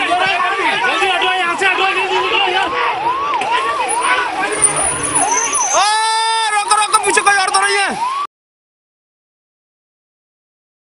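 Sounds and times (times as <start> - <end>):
siren yelping: 2.0 - 8.3
steady horn-like tone: 3.8 - 5.9.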